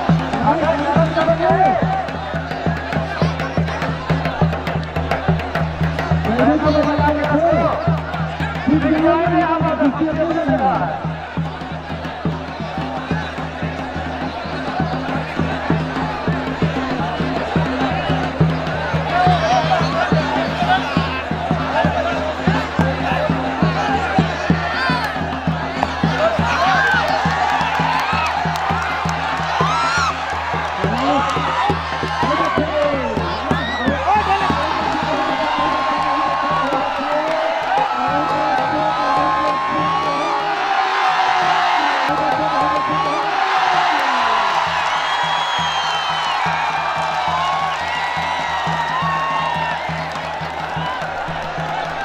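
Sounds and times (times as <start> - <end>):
crowd shouting and cheering: 0.0 - 52.0.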